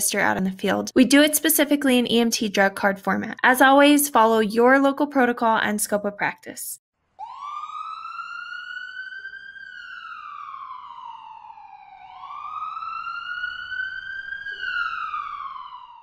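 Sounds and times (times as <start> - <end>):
emergency vehicle siren wailing: 7.2 - 16.0.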